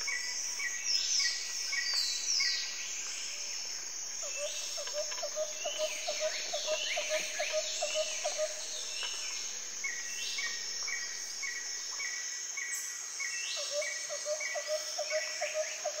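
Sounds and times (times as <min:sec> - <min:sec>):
steady high hiss: 0:00.0 - 0:14.2
songbirds singing and calling: 0:00.0 - 0:16.0.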